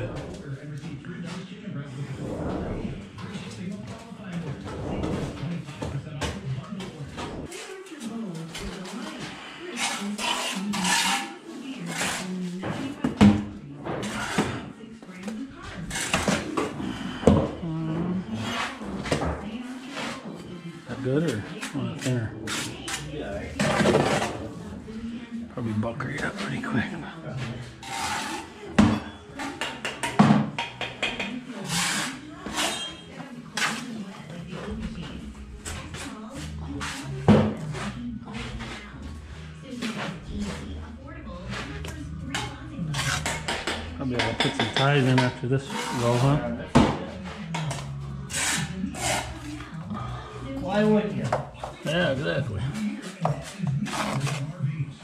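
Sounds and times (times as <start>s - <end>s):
trowel scraping mortar: 9.7s - 12.4s, 27.8s - 28.6s, 31.6s - 33.9s, 42.5s - 43.8s, 48.3s - 49.6s, 53.4s - 54.5s.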